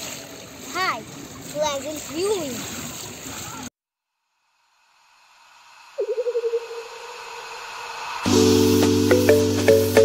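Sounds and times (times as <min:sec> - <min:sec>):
electronic hiss: 0:04.3 - 0:10.0
wavering electronic tone: 0:05.9 - 0:09.5.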